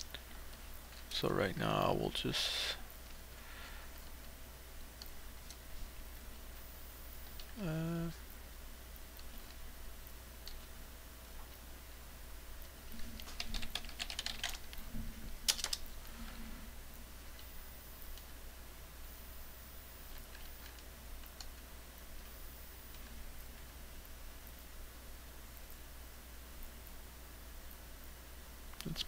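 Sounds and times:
keyboard keys clicking: 0:13.2 - 0:14.8, 0:15.5 - 0:15.8.

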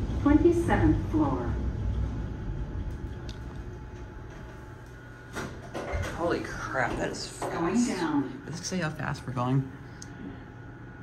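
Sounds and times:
elevator car rumble and hum: 0:00.0 - 0:08.4.

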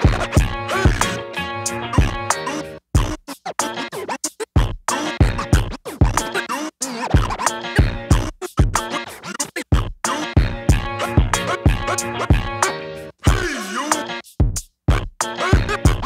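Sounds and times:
hip-hop drum beat: 0:00.0 - 0:16.0
vinyl record scratching: 0:00.0 - 0:16.0.

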